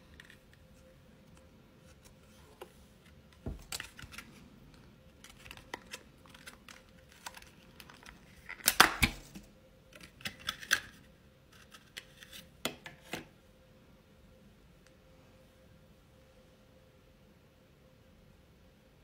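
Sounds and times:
plastic wrapper crinkling and tearing: 3.6s - 12.4s.

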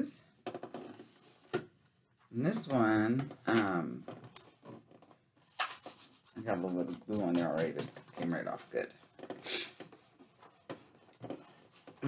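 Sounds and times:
paper rustling and rubbing: 5.4s - 8.9s, 9.7s - 12.0s.

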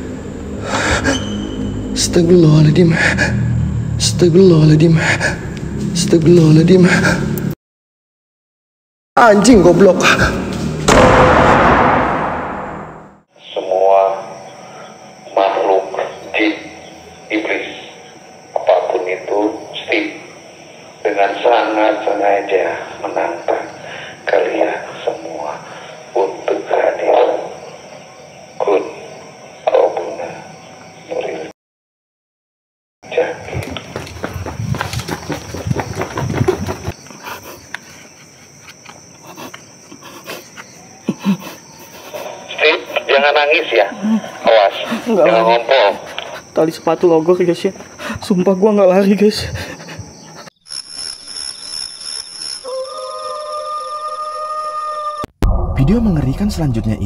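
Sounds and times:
low rumbling noise: 10.7s - 13.2s, 55.4s - 57.0s
man talking: 55.8s - 57.0s.

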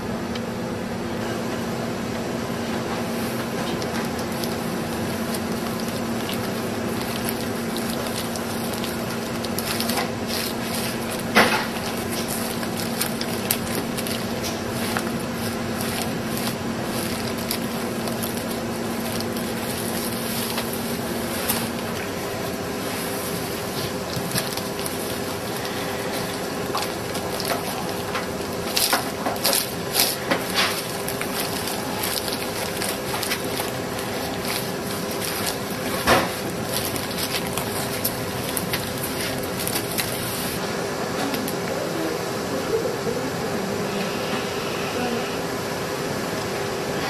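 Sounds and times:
steady hum: 0.0s - 47.0s
bamboo mat clicks and rustles: 3.5s - 40.6s.

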